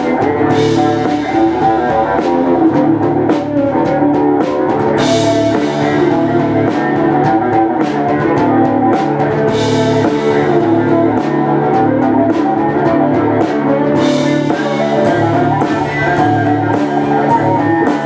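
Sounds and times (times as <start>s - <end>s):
drum kit steady beat: 0.0s - 18.0s
electric guitars: 0.0s - 18.0s.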